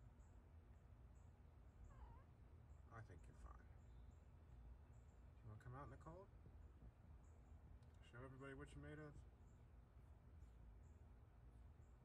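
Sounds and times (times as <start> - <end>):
cat meowing faintly: 1.9 - 2.3.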